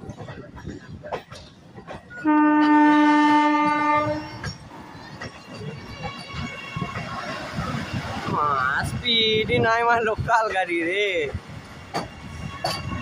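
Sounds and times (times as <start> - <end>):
train coaches rushing past: 0.0 - 13.0
train horn blast: 2.2 - 4.5.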